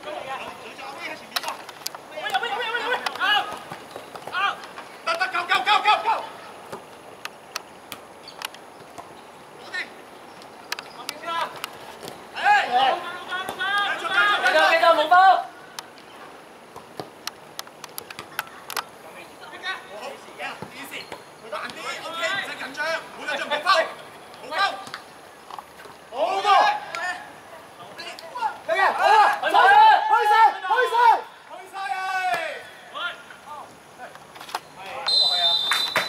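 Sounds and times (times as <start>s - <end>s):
players shouting: 2.1s - 6.6s, 12.3s - 15.6s, 26.1s - 33.7s
players calling out: 10.9s - 15.6s.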